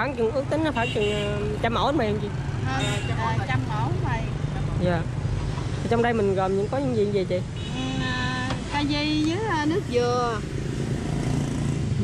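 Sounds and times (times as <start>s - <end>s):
voices talking: 0.0s - 5.2s, 5.8s - 10.6s
street traffic rumble: 0.0s - 12.0s.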